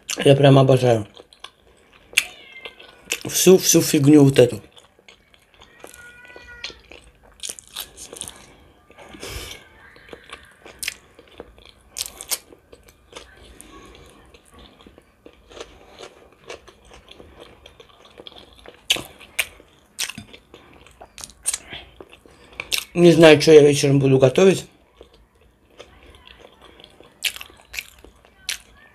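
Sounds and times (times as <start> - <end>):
person chewing: 0.0 - 23.0, 24.7 - 28.8
crunchy bites: 4.1 - 23.0.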